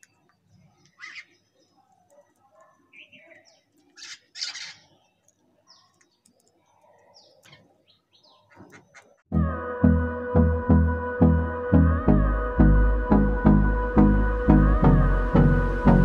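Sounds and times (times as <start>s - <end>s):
birds chirping: 0.0s - 9.3s
loud music: 9.3s - 16.0s.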